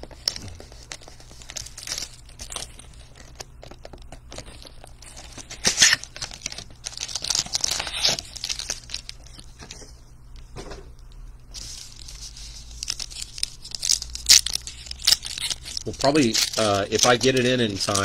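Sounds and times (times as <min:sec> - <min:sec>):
shrink wrap tearing and crinkling: 0:00.0 - 0:09.8, 0:11.6 - 0:18.0.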